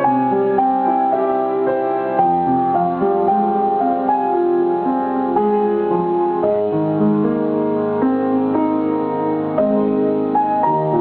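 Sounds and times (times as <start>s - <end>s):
upright piano melody: 0.0s - 11.0s.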